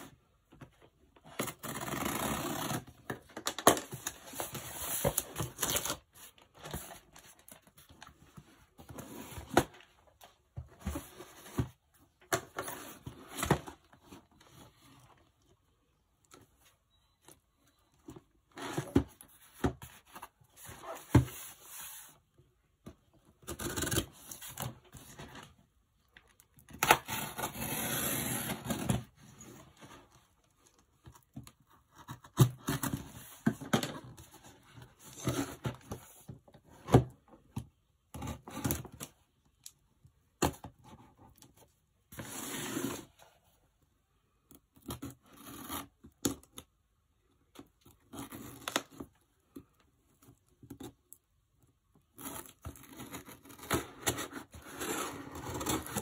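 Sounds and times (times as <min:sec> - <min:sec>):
cardboard boxes scraping: 0:27.1 - 0:30.0, 0:42.2 - 0:43.2.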